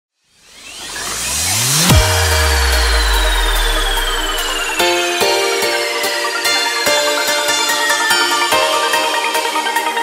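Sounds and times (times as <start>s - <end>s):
thin tone gliding downward: 0.3s - 4.9s
low hum: 0.5s - 4.8s
deep bass hit: 1.2s - 5.0s.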